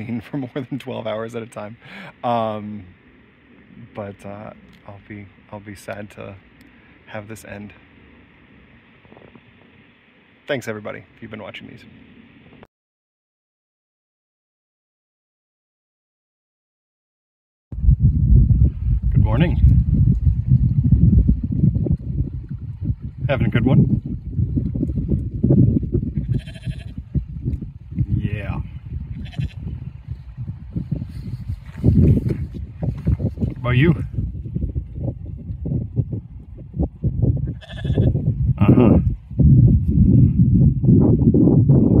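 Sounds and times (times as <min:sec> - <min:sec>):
wind buffeting the microphone: 0:08.6 - 0:10.0, 0:17.7 - 0:42.0
heavy low rumble: 0:17.7 - 0:42.0
sheep bleating: 0:26.2 - 0:27.0, 0:29.2 - 0:29.7, 0:37.5 - 0:38.2.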